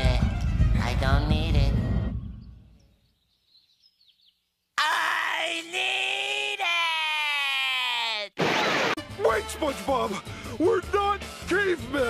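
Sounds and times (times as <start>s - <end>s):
high-pitched cartoon scream: 4.8s - 8.4s.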